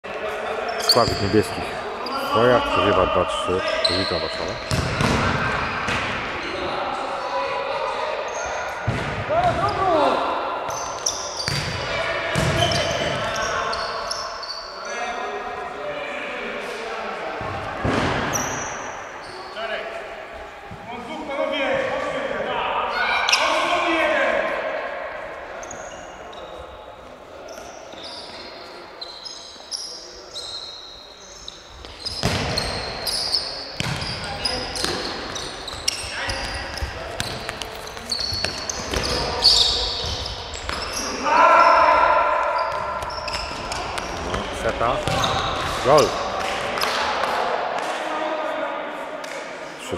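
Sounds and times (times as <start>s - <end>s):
players calling out: 0.4s - 15.2s, 32.1s - 47.4s
ball kicked and bouncing on floor: 4.7s - 5.3s.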